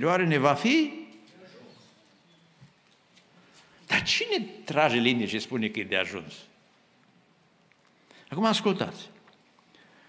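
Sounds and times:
man speaking: 0.0s - 1.7s, 3.9s - 6.5s, 8.3s - 9.2s.

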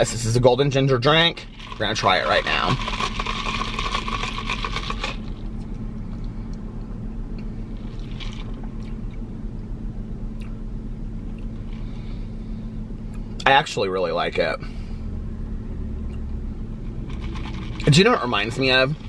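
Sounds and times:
low hum of car cabin: 0.0s - 19.0s
sipping iced drink through straw: 1.4s - 5.5s, 7.8s - 9.0s, 17.1s - 18.5s.

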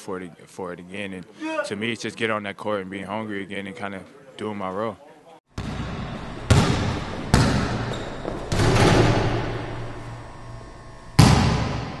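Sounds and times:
loud impact hit: 5.6s - 10.1s, 11.2s - 12.0s.

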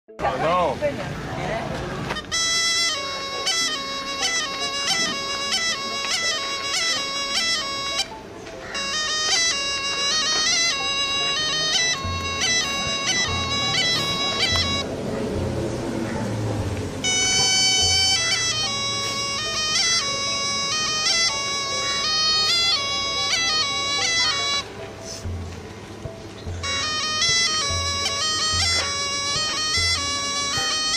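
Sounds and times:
reed pipe melody: 0.1s - 30.9s.

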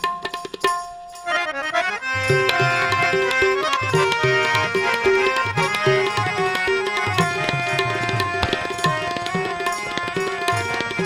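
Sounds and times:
tabla drumming: 0.0s - 1.3s, 2.1s - 11.0s
harmonium playing: 1.1s - 11.0s.

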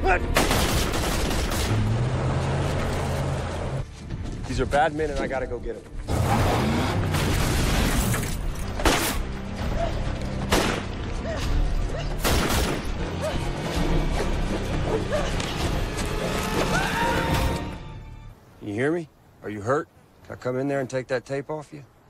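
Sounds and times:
dramatic film score: 0.0s - 18.4s.

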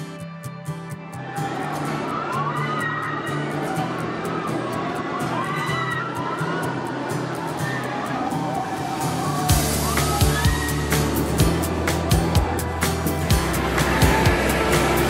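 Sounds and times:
background music: 0.0s - 15.0s
riders screaming: 1.2s - 12.7s
roller coaster rushing on track: 1.2s - 15.0s.

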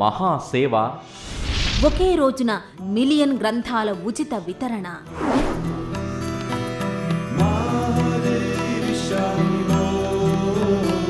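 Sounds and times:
chanted devotional singing: 7.1s - 11.0s.

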